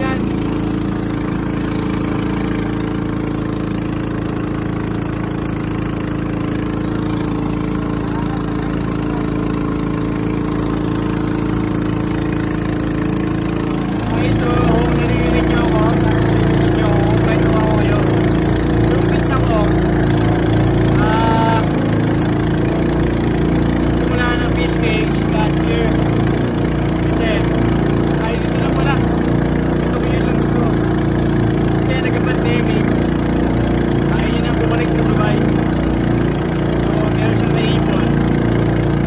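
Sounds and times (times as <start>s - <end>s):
voices: 0.0s - 4.4s, 6.3s - 11.6s, 12.2s - 39.0s
small engine running: 0.0s - 39.0s.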